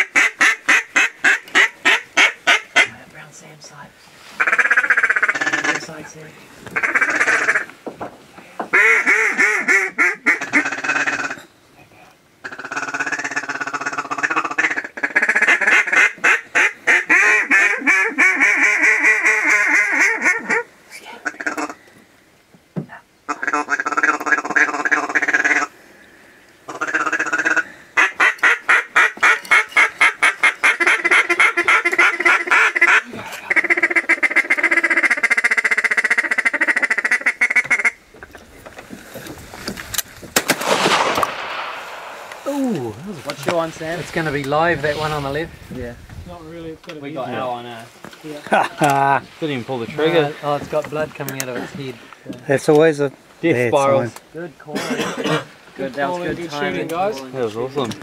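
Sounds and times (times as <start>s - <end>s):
duck calls quacking rapidly: 0.0s - 2.9s, 4.4s - 5.8s, 6.8s - 7.7s, 8.7s - 11.4s, 12.4s - 20.6s, 26.7s - 38.0s.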